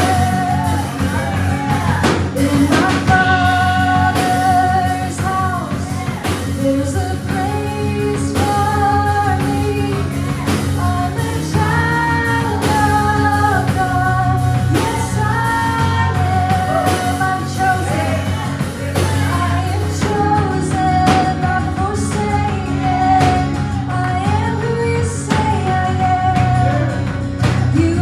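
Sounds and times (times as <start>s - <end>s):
drum kit: 0.0s - 28.0s
electric guitar: 0.0s - 28.0s
live worship band playing: 0.0s - 28.0s
woman singing lead: 0.0s - 28.0s.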